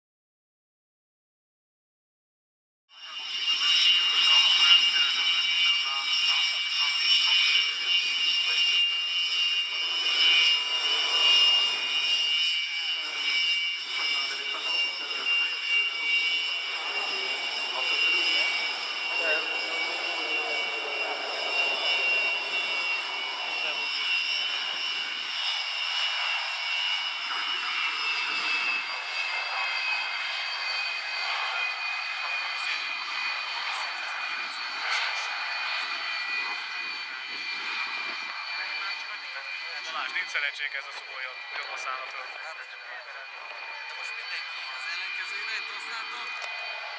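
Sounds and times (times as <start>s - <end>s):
jet engines whining: 3.0s - 46.9s.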